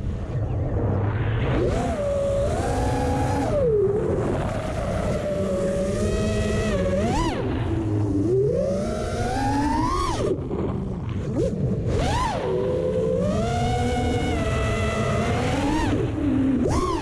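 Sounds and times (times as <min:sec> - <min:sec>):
drone motors whining: 0:00.0 - 0:17.0
rush of wind and propwash: 0:00.0 - 0:17.0.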